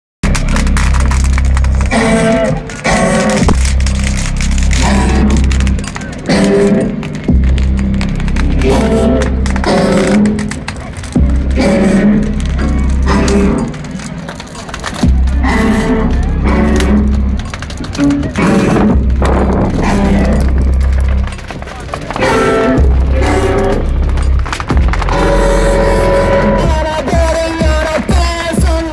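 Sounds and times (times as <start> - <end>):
heavy pulsing bass: 0.2 - 28.9.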